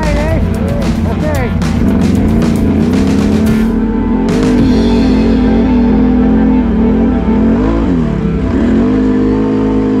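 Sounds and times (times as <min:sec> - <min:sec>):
music with singing: 0:00.0 - 0:09.7
atv engine running: 0:00.0 - 0:10.0.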